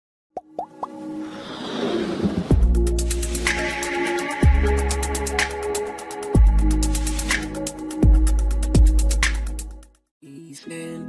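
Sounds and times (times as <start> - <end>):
swelling whoosh: 1.0 - 4.1.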